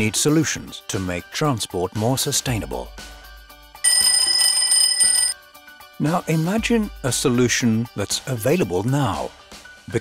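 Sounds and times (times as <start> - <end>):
mechanical alarm clock ringing: 3.8 - 5.4.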